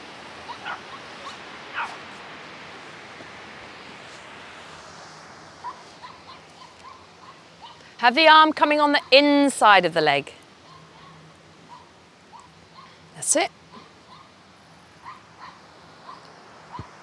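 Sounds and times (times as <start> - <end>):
distant surf: 0.0 - 17.0
wind: 0.0 - 17.0
faint distant calls: 0.3 - 2.3, 5.6 - 8.0, 10.3 - 17.0.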